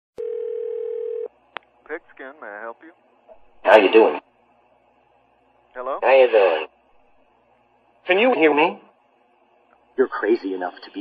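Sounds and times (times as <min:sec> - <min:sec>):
telephone line tone: 0:00.2 - 0:01.3.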